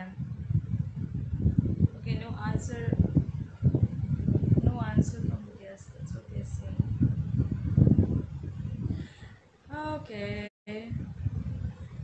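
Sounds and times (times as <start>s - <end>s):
low uneven rumbling: 0.0s - 12.0s.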